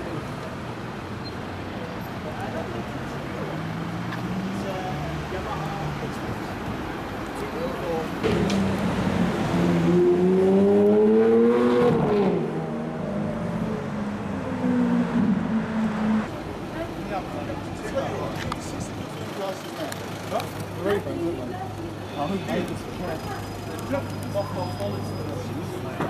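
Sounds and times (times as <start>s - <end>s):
car engine accelerating: 8.2s - 16.3s.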